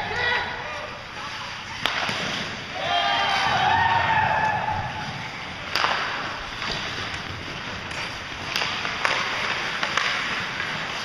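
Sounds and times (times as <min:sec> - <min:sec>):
sharp hockey clack: 0:01.8 - 0:02.5, 0:05.6 - 0:07.2, 0:07.9 - 0:11.0.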